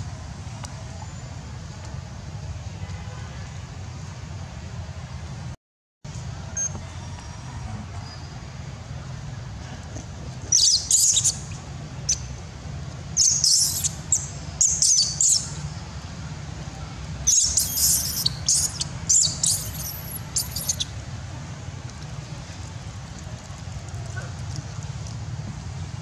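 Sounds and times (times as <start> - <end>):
infant monkey squealing: 10.5 - 11.5, 13.2 - 15.4, 17.2 - 20.9.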